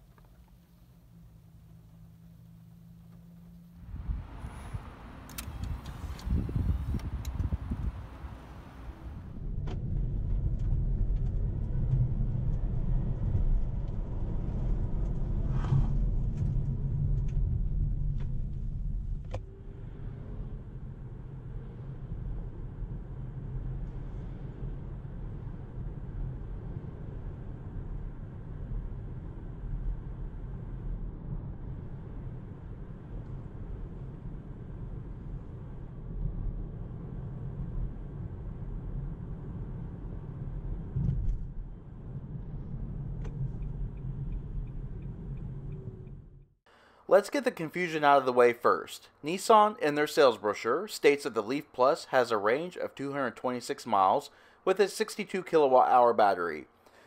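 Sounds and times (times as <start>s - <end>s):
road and tyre rumble: 0.0s - 47.0s.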